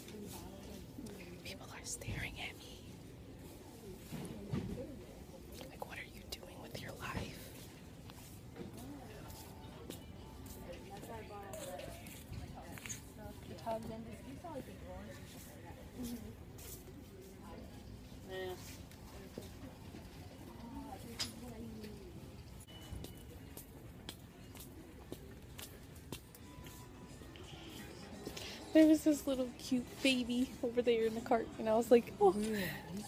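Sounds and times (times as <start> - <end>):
quiet murmured speech: 0.0 - 33.0.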